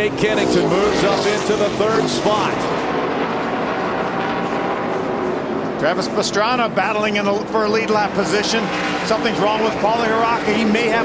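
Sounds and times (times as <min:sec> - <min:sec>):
race cars racing past: 0:00.0 - 0:11.0.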